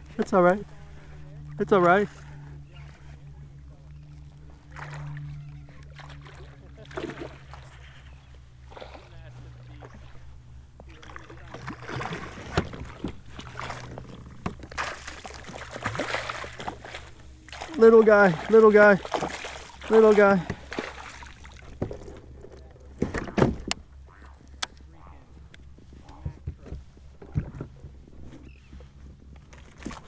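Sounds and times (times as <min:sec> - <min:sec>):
fish splashing in water: 0:10.9 - 0:22.2.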